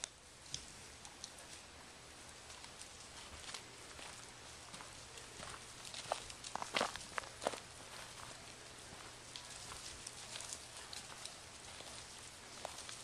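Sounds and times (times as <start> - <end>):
sharp crackles: 0.0 - 13.0
footsteps in dry leaves: 1.5 - 13.0.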